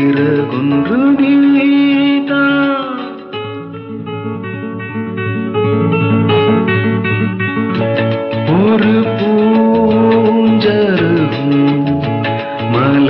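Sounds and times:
plucked strings repeated notes: 0.0s - 13.0s
steady bass line: 0.0s - 13.0s.

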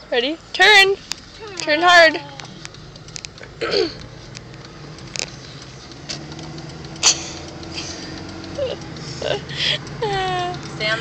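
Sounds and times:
car driving hum from inside: 0.0s - 11.0s
sharp click: 2.4s - 8.6s
person clearing throat: 3.6s - 4.0s.

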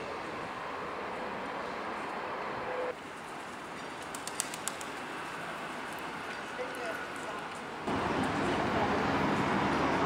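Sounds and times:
street background hiss: 0.0s - 10.0s.

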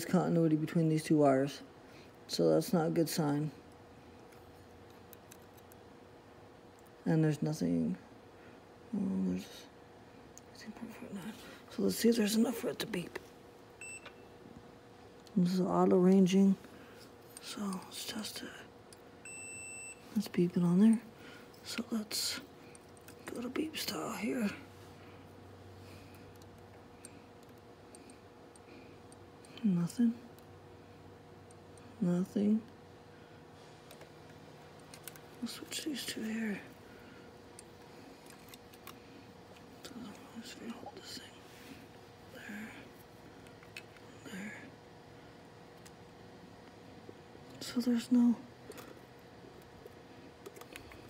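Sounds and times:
faint steady hum: 0.0s - 51.0s.

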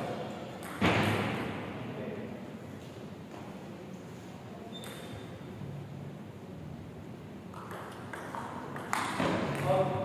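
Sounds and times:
table tennis ball hit by paddle: 0.6s - 1.5s, 7.5s - 10.0s.

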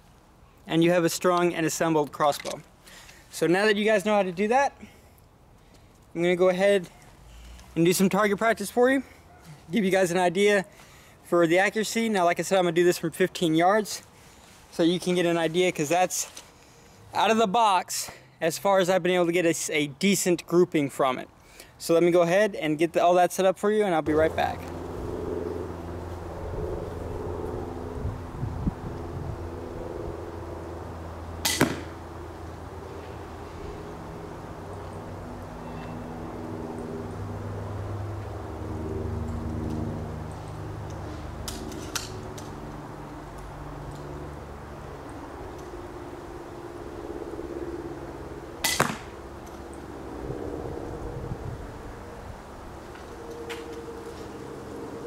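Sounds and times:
steady low background hum: 23.9s - 55.0s
crossbow sharp double snap: 31.4s - 32.0s, 48.6s - 49.1s
bolt striking foam target: 31.5s - 32.0s, 48.7s - 49.1s.

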